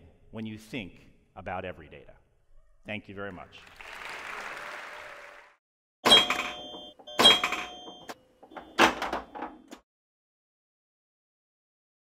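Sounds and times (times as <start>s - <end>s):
faint ringing tone: 6.1s - 8.8s.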